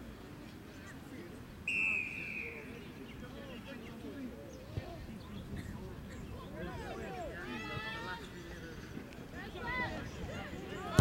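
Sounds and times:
faint distant chatter: 0.0s - 11.0s
referee's whistle blast: 1.7s - 2.7s.

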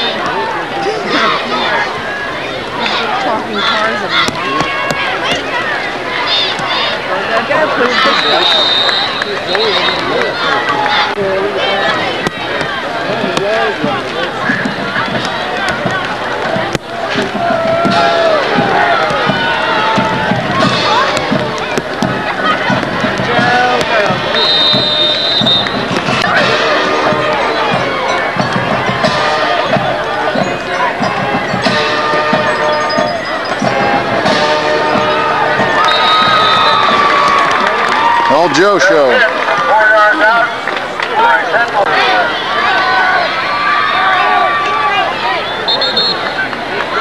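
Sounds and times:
crowd cheering: 0.0s - 47.0s
crowd talking and shouting: 0.0s - 47.0s
music: 13.8s - 37.7s.

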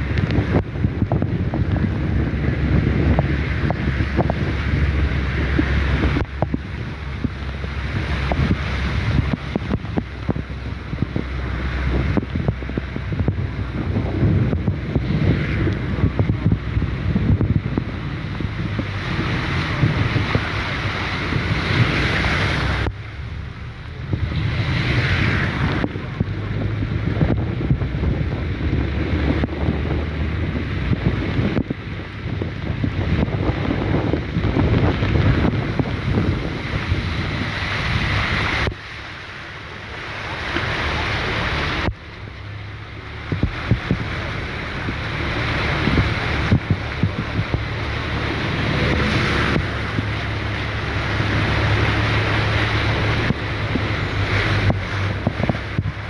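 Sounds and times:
heavy rain hiss: 0.0s - 56.0s
wind gusting across microphone: 0.0s - 56.0s.

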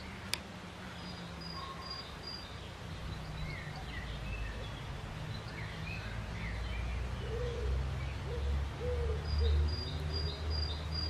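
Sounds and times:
faint songbird chirps: 0.0s - 11.0s
pigeon cooing: 7.3s - 9.7s.

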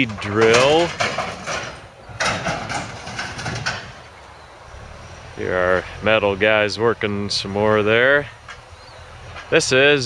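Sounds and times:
machinery crunching scrap metal: 0.0s - 4.1s
metal clatter: 0.0s - 4.2s.

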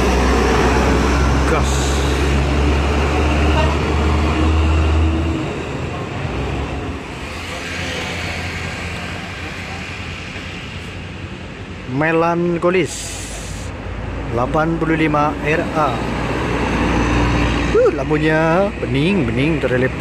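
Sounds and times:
bus diesel engine humming: 0.0s - 20.0s
road traffic noise: 0.0s - 20.0s.

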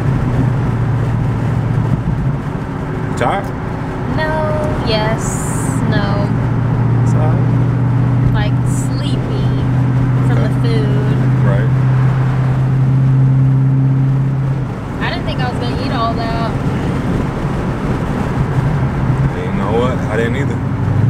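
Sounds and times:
car engine drone: 0.0s - 21.0s
tyre and road noise: 0.0s - 21.0s.

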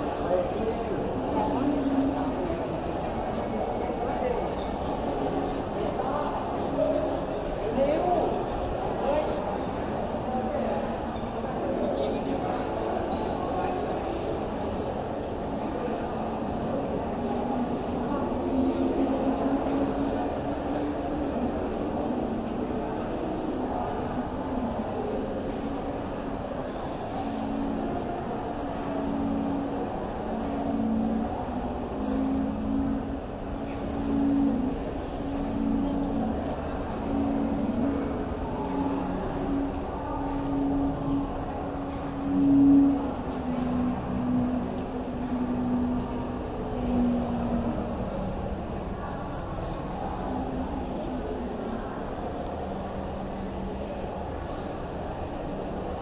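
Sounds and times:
faint distant voices: 0.0s - 56.0s
shopping mall hum: 0.0s - 56.0s.

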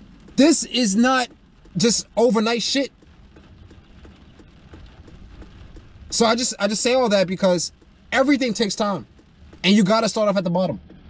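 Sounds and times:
faint light ticks: 0.0s - 11.0s
low car cabin rumble: 0.0s - 11.0s.

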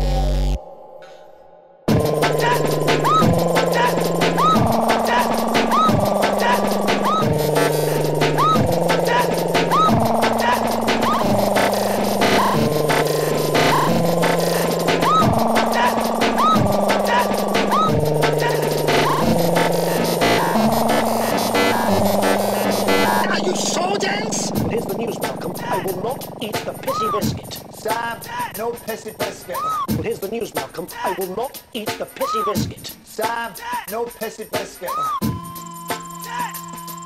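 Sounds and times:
bass line: 0.0s - 0.6s, 1.9s - 30.4s
rising synth glide: 1.9s - 29.9s.

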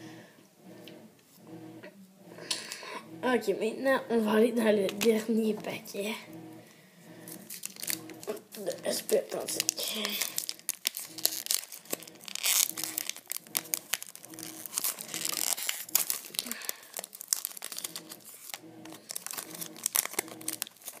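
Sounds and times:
foil wrapper tearing and crinkling: 7.4s - 21.0s.

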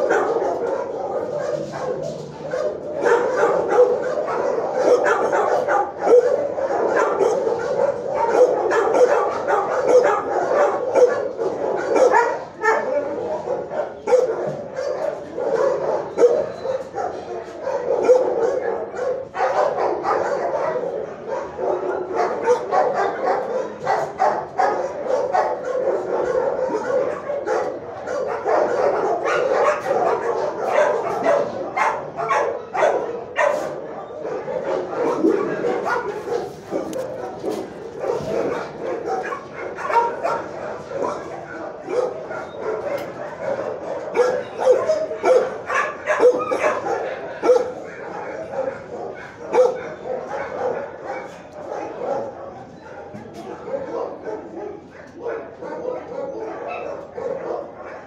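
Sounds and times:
many dogs barking and yipping: 0.0s - 58.0s.

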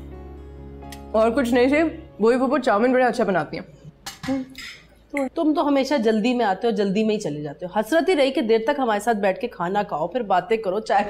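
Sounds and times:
cutlery clinking on plates: 4.1s - 4.9s.

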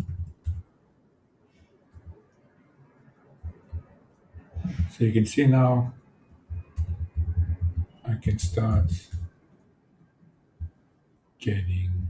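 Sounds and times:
laptop keyboard typing: 0.0s - 0.6s, 6.5s - 7.9s.

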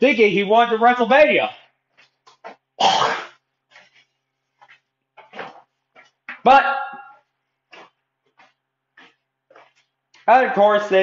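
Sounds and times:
man speaking: 0.0s - 1.8s, 6.4s - 7.2s, 10.2s - 11.0s.

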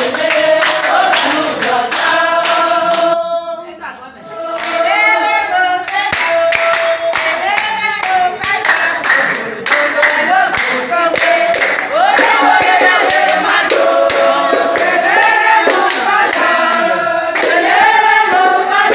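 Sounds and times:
rhythmic handclapping: 0.0s - 3.4s, 4.4s - 18.9s
women singing together: 0.0s - 18.9s.

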